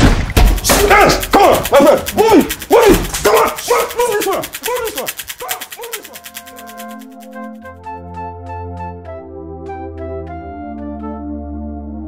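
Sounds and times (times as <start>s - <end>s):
man yelling: 0.6s - 6.2s.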